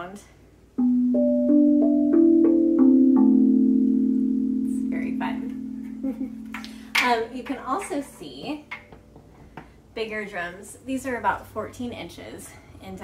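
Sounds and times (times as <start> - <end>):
steel tongue drum notes: 0.8 - 9.1.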